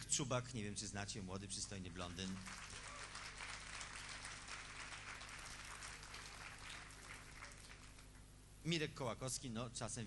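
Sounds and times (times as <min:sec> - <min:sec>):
low steady hum: 0:00.0 - 0:10.0
audience applauding: 0:02.2 - 0:08.1.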